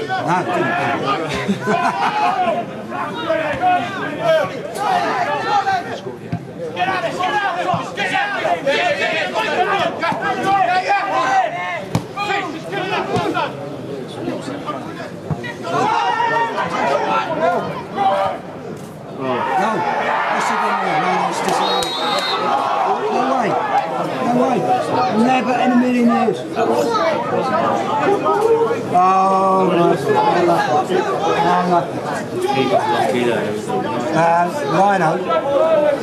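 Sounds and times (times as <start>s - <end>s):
people talking over one another: 0.0s - 36.0s
voices shouting: 19.2s - 28.9s.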